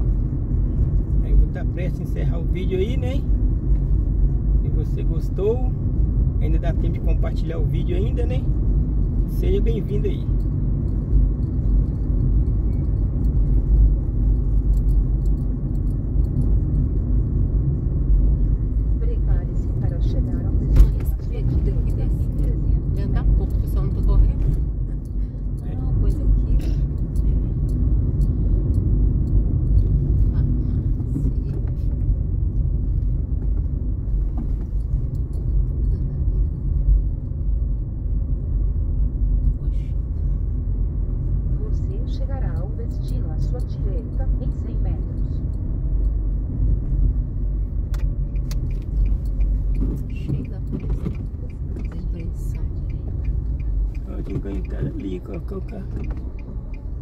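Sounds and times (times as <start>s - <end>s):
road and engine rumble: 0.0s - 57.0s.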